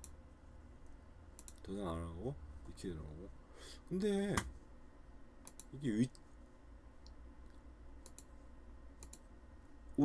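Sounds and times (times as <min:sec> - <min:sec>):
low steady hum: 0:00.0 - 0:10.0
computer mouse clicks: 0:01.4 - 0:01.6, 0:05.4 - 0:06.3, 0:07.0 - 0:08.3, 0:09.0 - 0:09.3.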